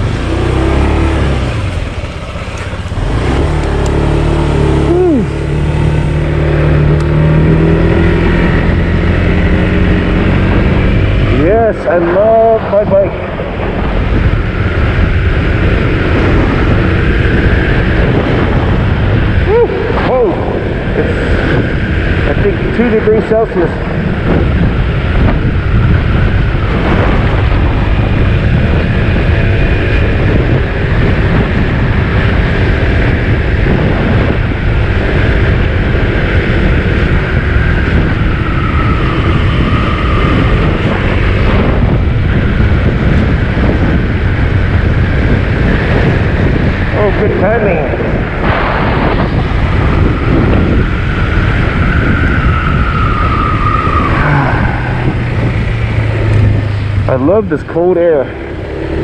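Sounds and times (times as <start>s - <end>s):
scooter engine running: 0.0s - 11.2s
wind on microphone: 0.0s - 59.0s.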